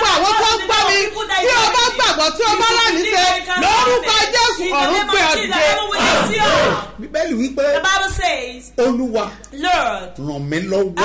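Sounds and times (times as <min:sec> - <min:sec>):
woman shouting in prayer: 0:00.0 - 0:06.9.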